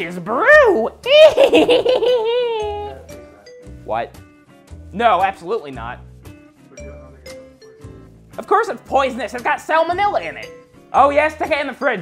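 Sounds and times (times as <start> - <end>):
high-pitched cackling laugh: 1.1 - 2.9.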